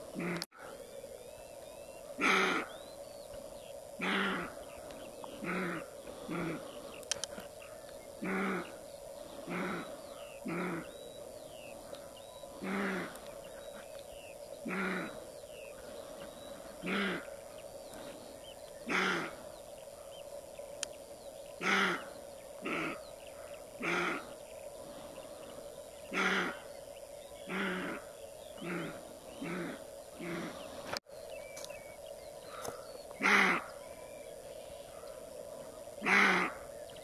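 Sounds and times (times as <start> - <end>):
faint bird chirps: 0.0 - 37.0.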